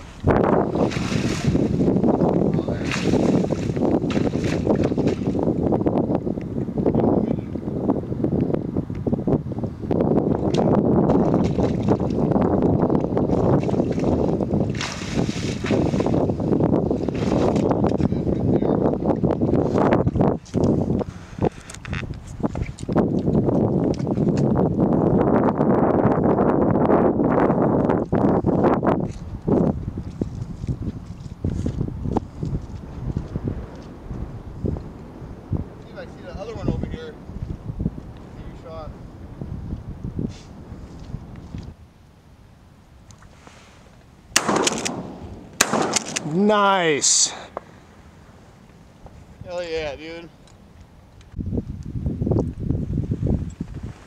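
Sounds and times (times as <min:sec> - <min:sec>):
water sloshing from wading: 0:00.0 - 0:01.9
wind rumbling on microphone: 0:00.0 - 0:54.0.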